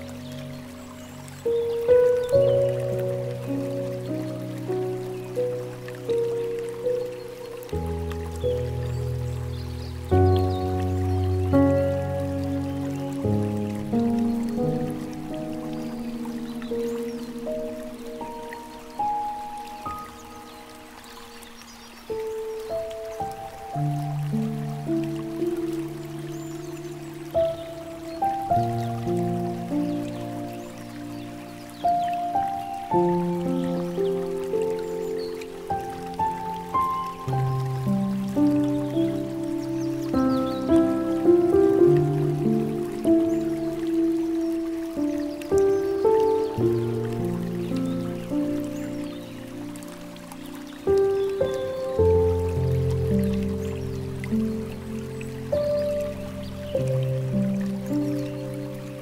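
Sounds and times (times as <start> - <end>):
gentle solo piano: 0.0 - 59.0
trickle of flowing water: 0.0 - 59.0.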